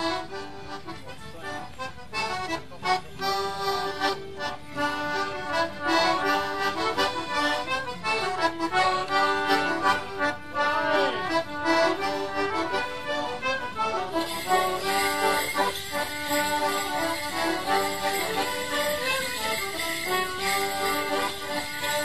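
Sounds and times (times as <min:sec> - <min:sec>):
leg bells jingling: 0:03.1 - 0:22.0
squeezeboxes playing a dance tune: 0:13.8 - 0:22.0.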